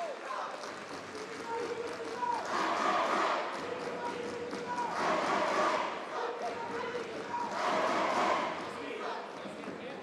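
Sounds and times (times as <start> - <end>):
crowd shouting: 4.7 - 9.2.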